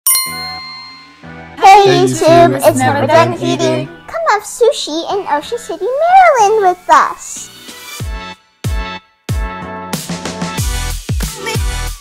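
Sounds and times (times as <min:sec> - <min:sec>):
bell-like ding: 0:00.0 - 0:01.4
loud voice speaking: 0:01.6 - 0:03.9.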